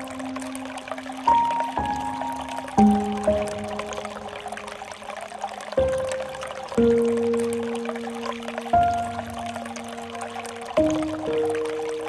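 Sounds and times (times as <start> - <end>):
slow soft music: 0.0 - 12.0
water pouring into a pool: 0.0 - 12.0.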